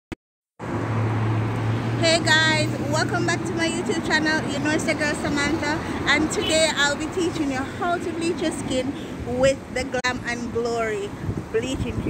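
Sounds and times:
outdoor background noise: 0:00.6 - 0:12.0.

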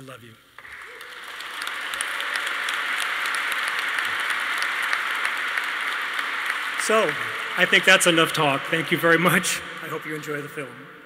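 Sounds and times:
audience applauding: 0:00.6 - 0:10.8.

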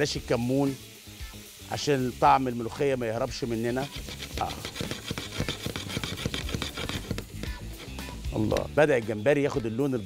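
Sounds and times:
hot oil sizzling: 0:00.0 - 0:10.0
spatula scraping metal pan: 0:03.3 - 0:08.5.

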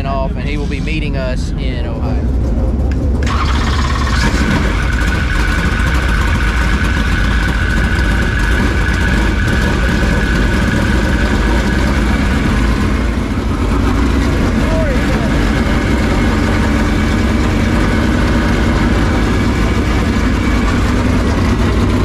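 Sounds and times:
engine whine: 0:00.0 - 0:22.0
racing engine rumbling: 0:00.0 - 0:22.0.

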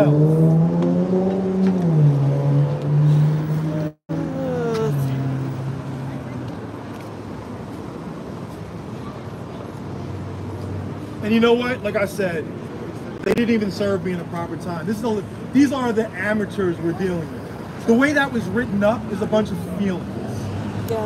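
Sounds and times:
car engine accelerating: 0:00.0 - 0:06.6
traffic noise: 0:00.0 - 0:21.0.

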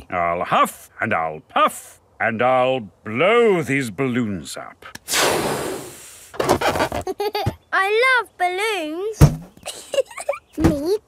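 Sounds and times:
breathy rush of air into balloon: 0:05.0 - 0:06.6
rubbery rubbing sound: 0:05.1 - 0:07.2.

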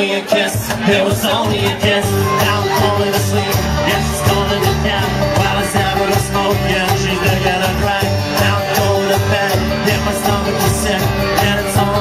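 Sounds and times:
strummed guitar: 0:00.2 - 0:12.0
steady drum beat: 0:00.4 - 0:12.0
pulsing bass line: 0:00.7 - 0:12.0.

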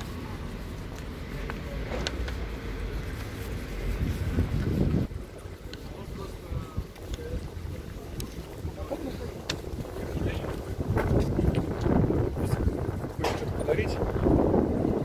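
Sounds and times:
passers-by talking: 0:00.0 - 0:15.0
wind rumbling on microphone: 0:00.0 - 0:15.0.

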